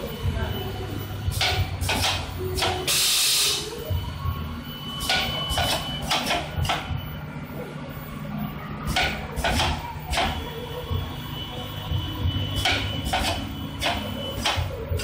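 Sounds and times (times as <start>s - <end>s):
machine humming: 0.0s - 15.0s.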